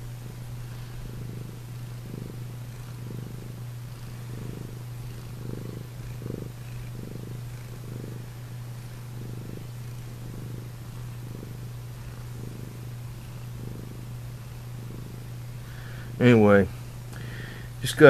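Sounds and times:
cat purring: 0.0 - 18.0
steady low hum: 0.0 - 18.0.

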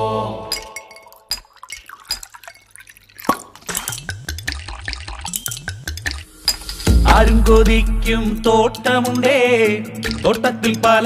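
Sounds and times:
low thumps dropping in pitch: 6.8 - 8.8.

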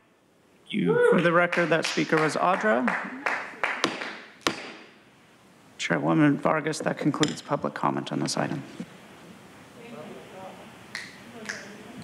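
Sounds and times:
faint voices in large chamber: 9.7 - 12.0.

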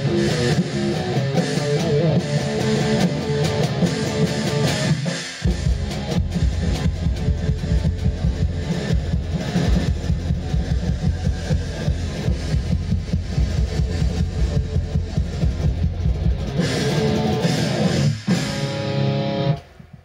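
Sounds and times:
live rock music: 0.0 - 19.8
drum kit fast beat: 0.0 - 20.0.

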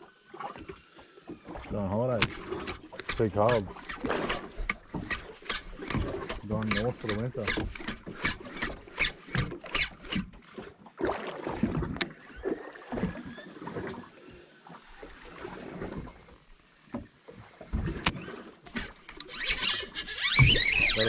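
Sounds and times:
water sloshing against boat hull: 0.2 - 21.0.

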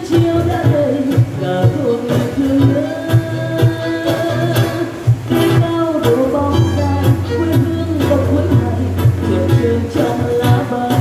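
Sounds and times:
plucked acoustic guitar: 0.0 - 11.0
woman singing into microphone: 0.0 - 11.0
violin: 6.3 - 9.9.

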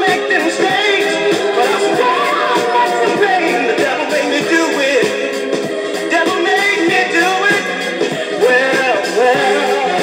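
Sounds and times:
soul record with singing: 0.0 - 10.0.

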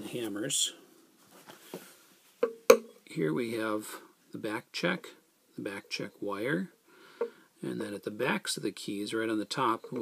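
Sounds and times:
person speaking: 7.6 - 10.0.

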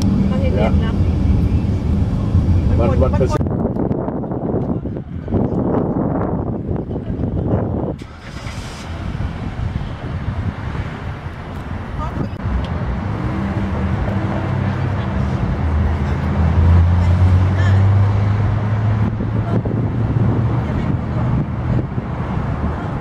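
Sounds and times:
car road and engine noise: 0.0 - 23.0.

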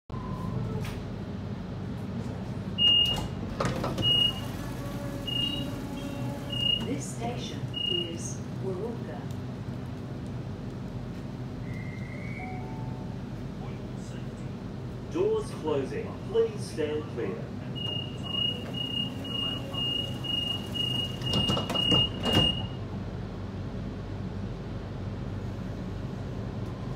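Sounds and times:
train low hum: 0.1 - 26.9
short high door beeps: 2.8 - 4.6, 5.2 - 7.0, 7.7 - 8.1, 17.8 - 22.8
train doors clattering open: 2.8 - 8.2, 17.8 - 22.8.

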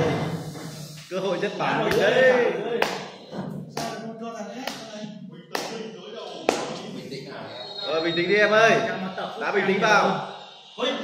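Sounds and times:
faint tv voices: 0.0 - 11.0.

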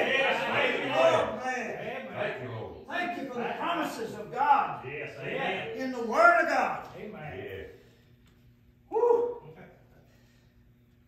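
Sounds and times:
faint steady hum: 0.0 - 11.0
person shouting: 8.9 - 9.5.

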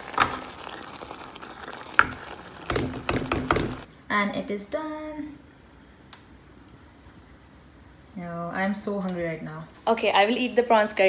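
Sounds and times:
curry simmering and sizzling: 0.0 - 3.9.

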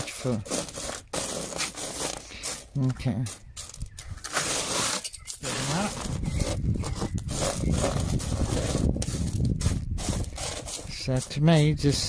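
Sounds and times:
fingers scraping wet gravel: 0.0 - 12.0.

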